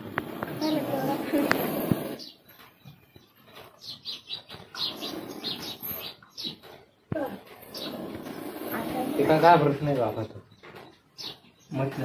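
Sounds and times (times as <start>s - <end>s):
faint background noise: 0.0s - 12.0s
small birds chirping: 0.1s - 12.0s.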